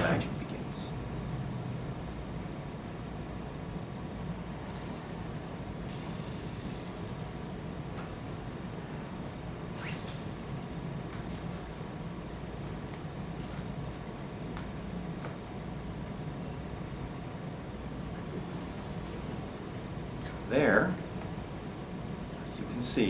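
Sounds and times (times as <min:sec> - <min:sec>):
low room hum: 0:00.0 - 0:23.0.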